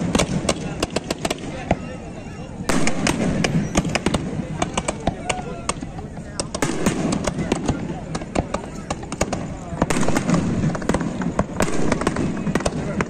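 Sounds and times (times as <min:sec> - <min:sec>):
fireworks bangs and crackles: 0:00.0 - 0:13.0.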